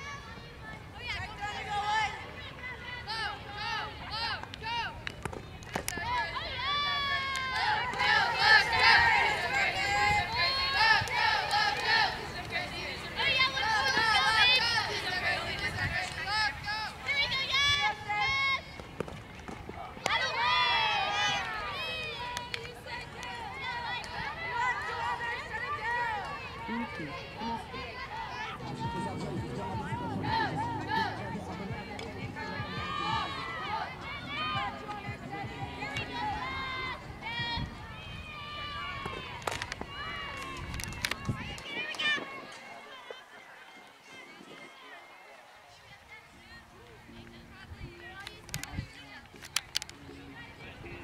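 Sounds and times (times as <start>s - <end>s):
crowd shouting and cheering: 0.0s - 47.2s.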